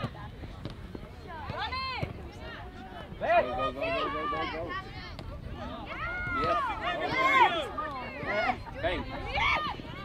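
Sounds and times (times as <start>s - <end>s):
players and spectators shouting: 3.2s - 10.0s.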